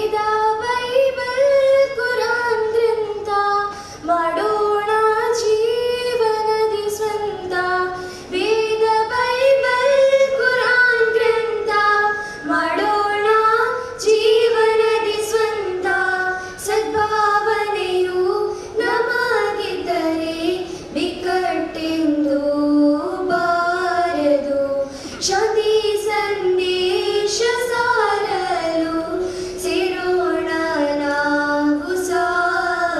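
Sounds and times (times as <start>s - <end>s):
girls singing together: 0.0s - 32.9s.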